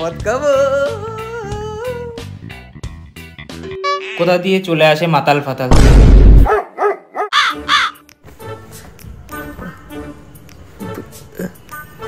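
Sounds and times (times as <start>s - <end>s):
crow cawing: 7.3s - 8.0s.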